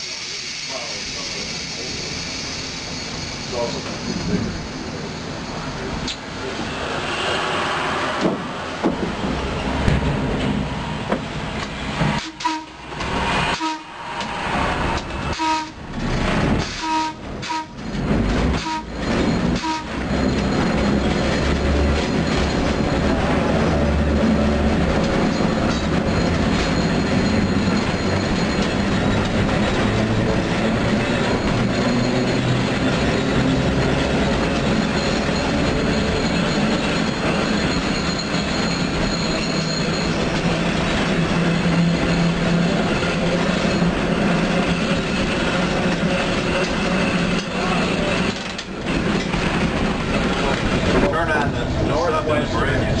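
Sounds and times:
wheels rumbling on rails: 0:00.0 - 0:53.0.

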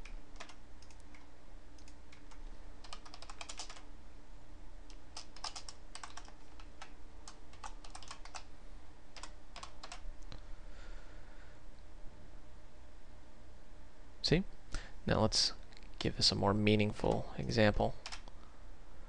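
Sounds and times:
computer keyboard typing: 0:00.0 - 0:03.9, 0:04.9 - 0:08.5, 0:09.2 - 0:10.0, 0:18.0 - 0:18.3.

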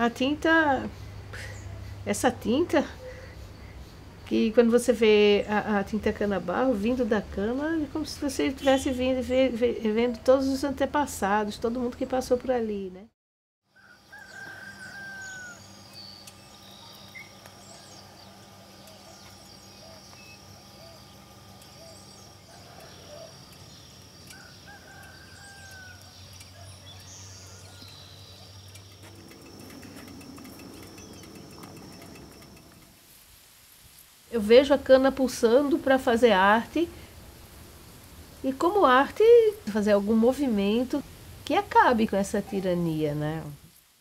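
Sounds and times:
distant rooster crowing: 0:13.7 - 0:16.0, 0:21.7 - 0:27.9
bird chirps: 0:14.2 - 0:32.8
low hum: 0:14.8 - 0:33.0.

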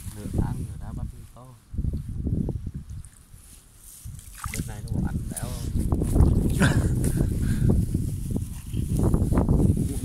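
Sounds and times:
wind buffeting microphone: 0:00.0 - 0:10.0
rustling through grass: 0:03.2 - 0:10.0.

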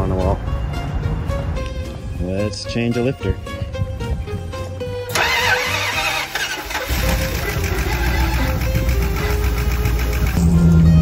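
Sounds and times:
background music: 0:00.0 - 0:11.0
engine running steadily: 0:04.3 - 0:11.0
van engine starting: 0:04.9 - 0:11.0.

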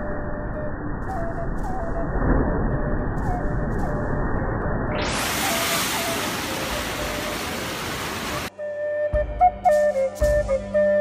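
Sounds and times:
rushing white water: 0:05.0 - 0:08.5.

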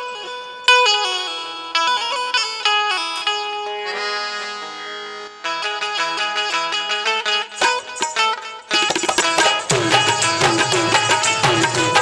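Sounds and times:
plucked string instrument melody: 0:00.0 - 0:12.0.

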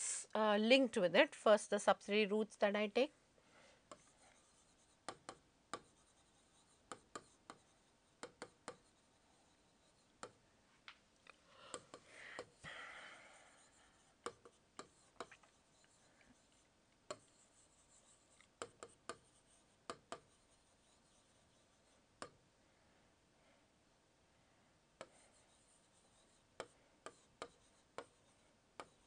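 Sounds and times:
stylus rubbing on touchscreen: 0:03.9 - 0:05.2, 0:05.8 - 0:10.3, 0:13.5 - 0:22.1, 0:25.0 - 0:29.0
stylus tapping on touchscreen: 0:05.0 - 0:06.0, 0:06.9 - 0:07.6, 0:08.2 - 0:08.9, 0:10.2 - 0:10.4, 0:14.2 - 0:15.5, 0:17.1 - 0:20.4, 0:26.1 - 0:29.0
pen tip tapping a board: 0:05.1 - 0:05.9, 0:06.9 - 0:07.6, 0:08.2 - 0:08.8, 0:14.2 - 0:15.4, 0:19.9 - 0:20.3.

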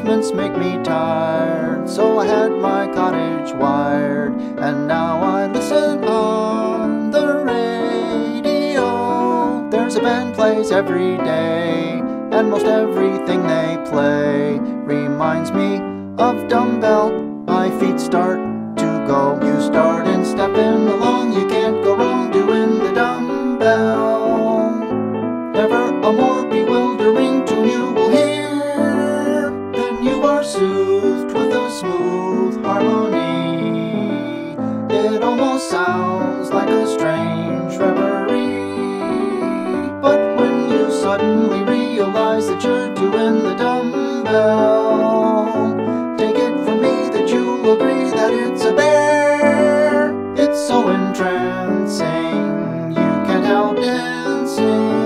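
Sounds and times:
man singing: 0:00.0 - 0:55.0
piano accompaniment: 0:00.0 - 0:55.0.

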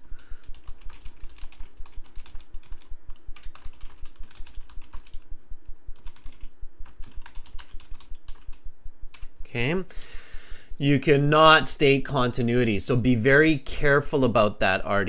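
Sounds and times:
typing on computer keyboard: 0:00.0 - 0:05.3, 0:06.0 - 0:09.3.

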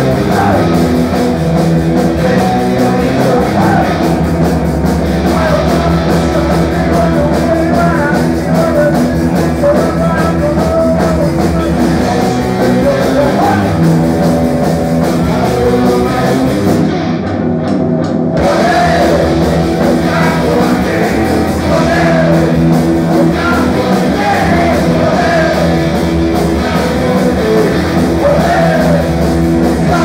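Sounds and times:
person singing: 0:00.0 - 0:00.8, 0:02.0 - 0:04.2, 0:05.2 - 0:13.9, 0:15.0 - 0:16.6, 0:18.4 - 0:30.0
bass guitar: 0:00.0 - 0:30.0
drum kit: 0:00.0 - 0:30.0
electric guitars: 0:00.0 - 0:30.0.

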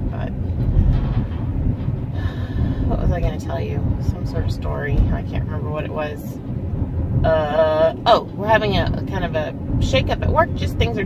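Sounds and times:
car engine rumble and road noise: 0:00.0 - 0:11.0.

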